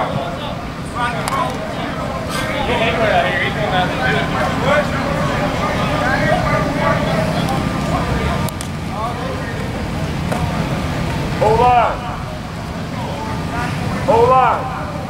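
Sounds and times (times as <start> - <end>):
people shouting across a field: 0.0 - 8.5
loud drawn-out shout: 11.4 - 15.0.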